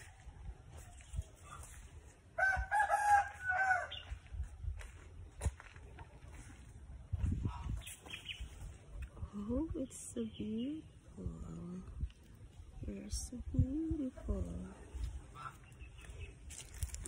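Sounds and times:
rooster crowing: 0:02.4 - 0:04.2.

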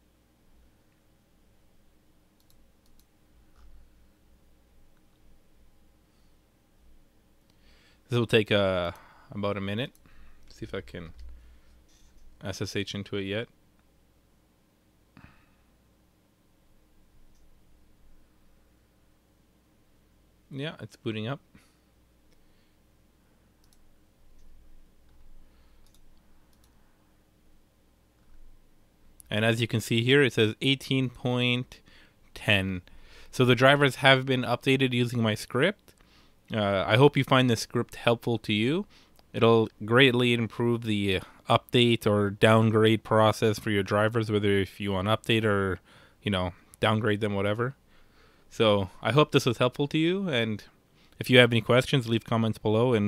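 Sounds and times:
low steady hum: 0:00.0 - 0:53.0
faint computer mouse clicks: 0:02.4 - 0:03.8, 0:23.6 - 0:23.8, 0:24.4 - 0:26.8.

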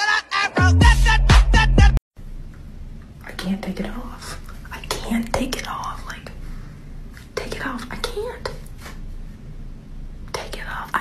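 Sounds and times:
woman whispering: 0:03.2 - 0:06.4, 0:07.2 - 0:08.9, 0:10.3 - 0:11.0.

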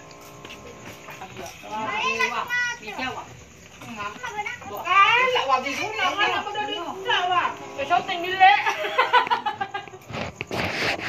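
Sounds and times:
child calling out: 0:01.8 - 0:02.8.

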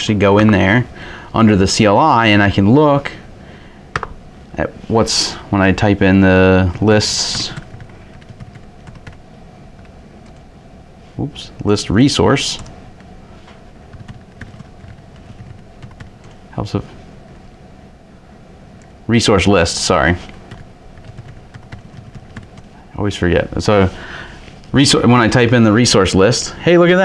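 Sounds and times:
room hiss: 0:00.0 - 0:27.0
computer keyboard typing: 0:07.2 - 0:09.2, 0:13.9 - 0:16.4, 0:20.4 - 0:22.8.

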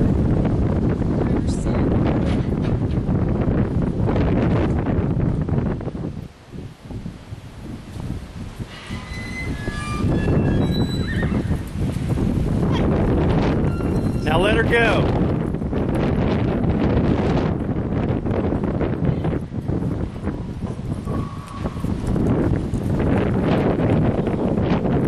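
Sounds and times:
wind on microphone: 0:00.0 - 0:25.0
horse whinnying: 0:09.0 - 0:11.6.

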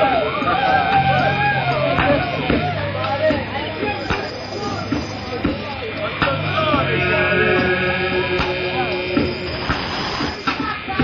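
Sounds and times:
crowd whistles or shouts: 0:00.0 - 0:06.4
rock band drone of held tones: 0:00.0 - 0:10.5.

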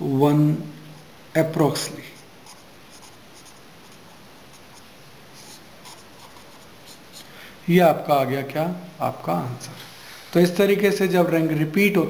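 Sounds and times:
pen writing on paper: 0:02.2 - 0:04.8, 0:05.4 - 0:07.2.

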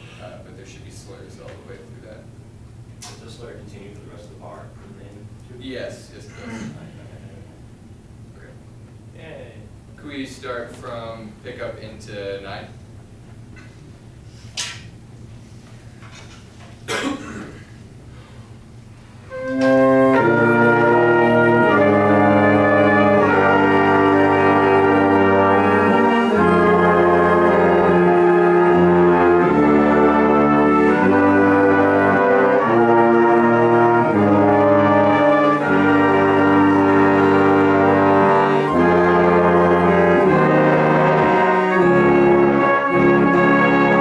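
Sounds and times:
brass ensemble playing chords: 0:19.1 - 0:44.0.

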